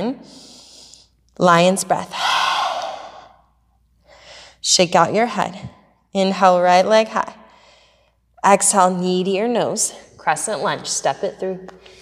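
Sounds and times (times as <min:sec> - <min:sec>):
woman forcefully exhaling: 0:02.1 - 0:03.4.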